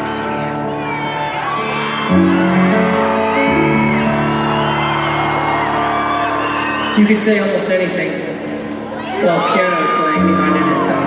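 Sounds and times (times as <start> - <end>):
crowd screaming and whooping: 0.0 - 11.0
piano playing slow chords: 0.0 - 11.0.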